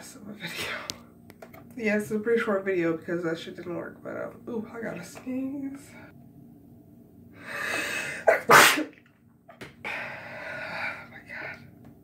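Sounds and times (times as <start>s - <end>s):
woman sneezing: 8.2s - 9.0s.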